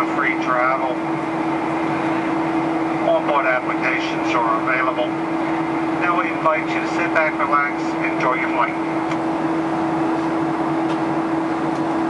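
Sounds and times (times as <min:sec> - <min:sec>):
jet cabin engine rush: 0:00.0 - 0:12.0
mid-pitched hum: 0:00.0 - 0:12.0.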